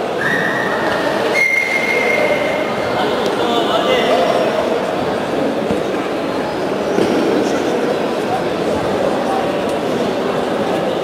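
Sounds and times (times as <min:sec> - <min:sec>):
hall crowd hubbub: 0:00.0 - 0:11.0.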